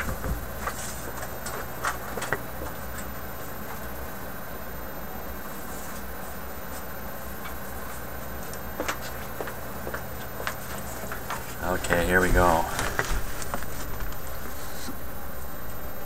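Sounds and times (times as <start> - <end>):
low hum and hiss: 0.0 - 16.0.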